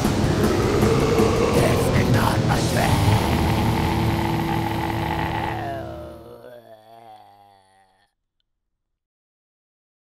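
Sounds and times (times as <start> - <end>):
death metal band playing: 0.0 - 6.5.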